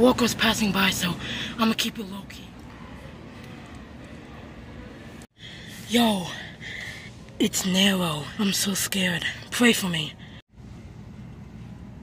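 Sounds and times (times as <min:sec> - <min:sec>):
faint store background hum: 0:00.0 - 0:12.0.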